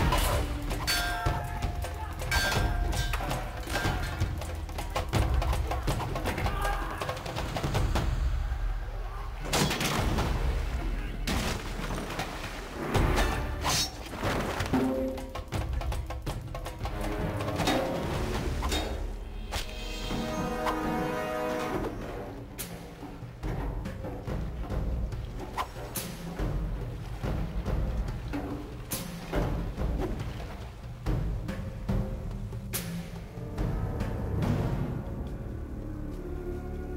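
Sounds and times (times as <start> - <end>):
water splashing underfoot: 10.0 - 19.7.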